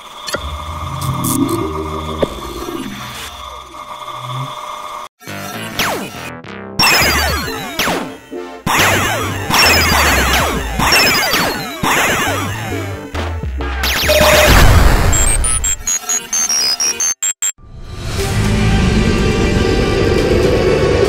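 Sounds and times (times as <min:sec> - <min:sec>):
loud low rumble: 0:00.4 - 0:03.2
arcade laser zaps: 0:06.8 - 0:12.5
electronic music with pulsing beat: 0:08.7 - 0:17.4
short electronic bleeps: 0:14.0 - 0:17.6.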